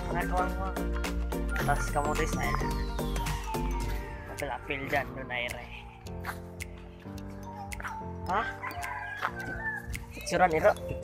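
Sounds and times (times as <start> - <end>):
background music with held tones: 0.0 - 11.0.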